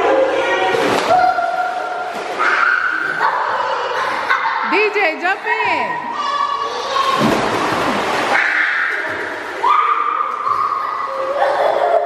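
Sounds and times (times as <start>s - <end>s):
splash into pool: 0.7s - 3.4s, 7.0s - 11.8s.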